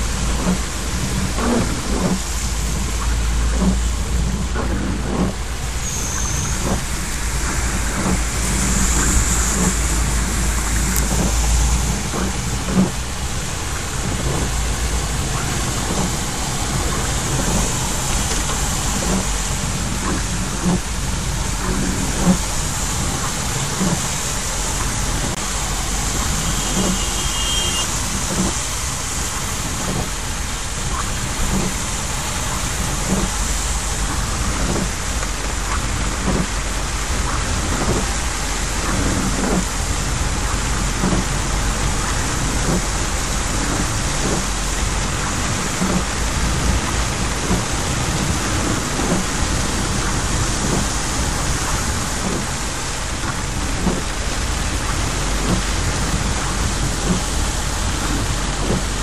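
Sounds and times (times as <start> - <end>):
deep rumble: 0.0 - 27.0, 28.0 - 59.0
car engine: 0.0 - 59.0
heavy rain on car roof: 0.0 - 59.0
tyres on wet road: 0.0 - 59.0.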